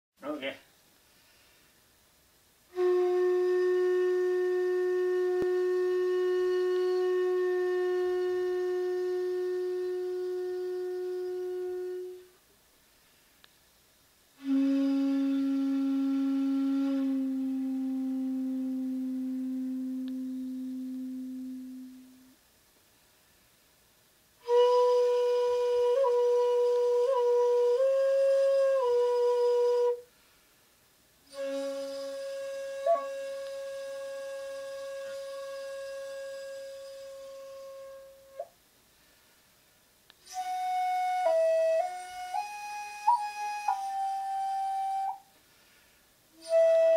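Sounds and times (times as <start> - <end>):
shakuhachi long low note: 2.7 - 12.4, 14.4 - 22.4, 24.4 - 30.1, 31.3 - 38.5, 40.2 - 45.3, 46.4 - 46.9.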